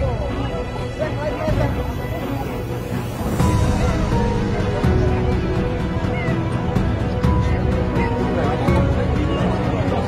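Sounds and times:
background music: 0.0s - 10.0s
indistinct voices talking: 0.0s - 10.0s.

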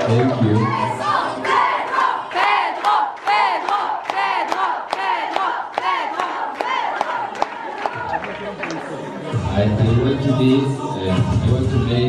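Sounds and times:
people clapping: 0.0s - 9.4s.

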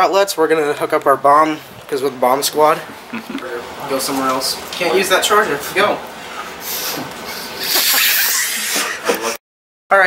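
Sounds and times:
blowing into inflatable valve: 6.6s - 9.0s.

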